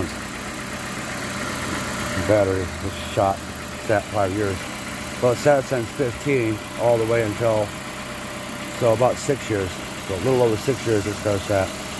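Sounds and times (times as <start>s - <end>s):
car engine idling: 0.0s - 11.9s.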